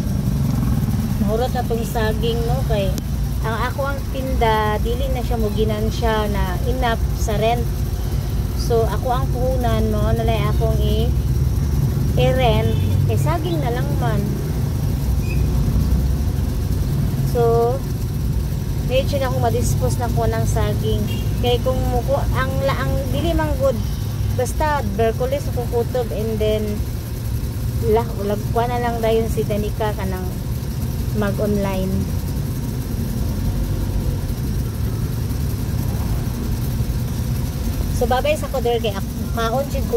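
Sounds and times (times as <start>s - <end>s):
vehicle engine and road rumble: 0.0s - 39.9s.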